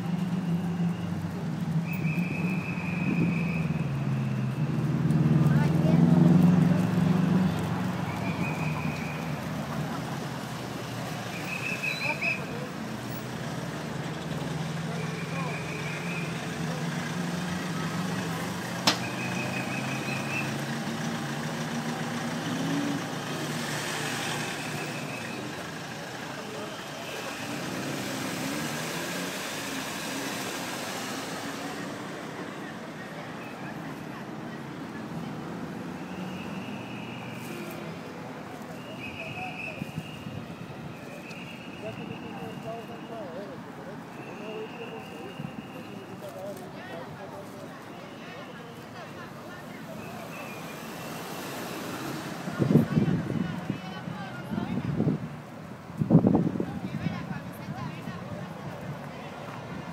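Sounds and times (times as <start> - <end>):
car engines passing: 0.0 - 59.9
sharp click: 18.8 - 19.1.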